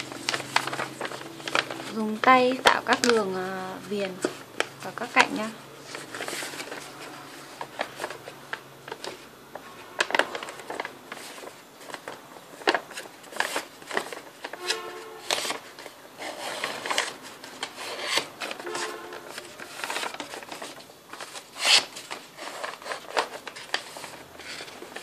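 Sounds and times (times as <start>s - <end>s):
paper bag rustling and crinkling: 0.0s - 25.0s.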